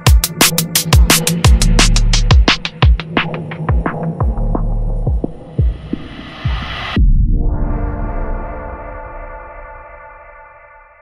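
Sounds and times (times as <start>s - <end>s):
kick drums: 0.0s - 6.6s
percussion: 0.0s - 7.3s
held sub-bass: 1.0s - 2.6s, 3.9s - 10.0s
hissing noise build: 5.4s - 7.0s.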